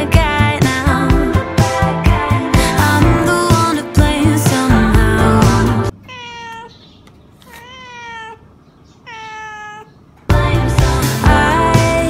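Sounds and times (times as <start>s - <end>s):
background music: 0.0s - 5.9s, 10.3s - 12.0s
cat meowing: 6.0s - 10.0s.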